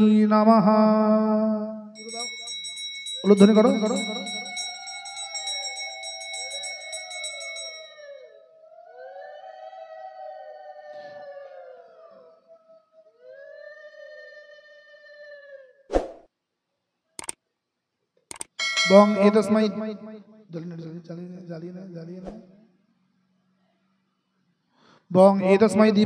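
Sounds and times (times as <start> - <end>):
bell ringing: 2.0 - 8.4, 18.6 - 20.0
women ululating: 3.2 - 15.8
sharp click: 17.2 - 17.4, 18.3 - 18.6.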